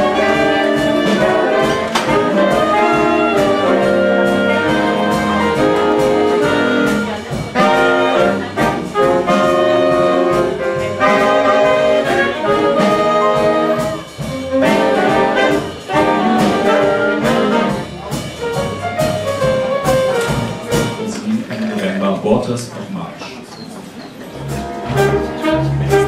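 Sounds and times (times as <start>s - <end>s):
jazz big band playing: 0.0s - 26.0s.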